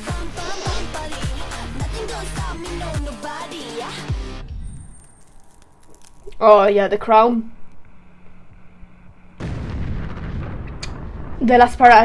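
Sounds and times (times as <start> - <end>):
deep explosion blast: 9.4 - 12.0.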